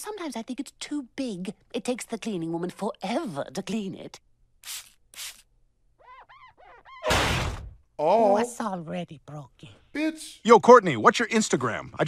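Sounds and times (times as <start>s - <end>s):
spray bottle spritz: 4.6s - 5.5s
short squeaks: 6.0s - 7.3s.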